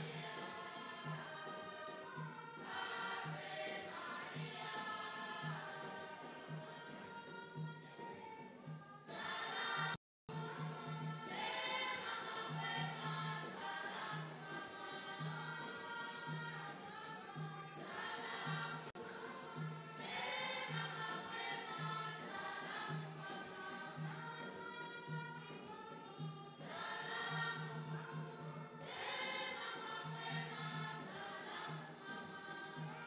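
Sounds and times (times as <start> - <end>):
choir singing: 0.0 - 33.0
ticking percussion: 0.0 - 33.0.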